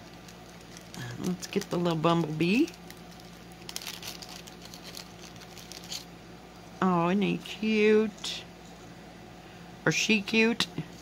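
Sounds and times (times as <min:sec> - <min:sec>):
plastic bag crinkling: 0:00.0 - 0:06.1.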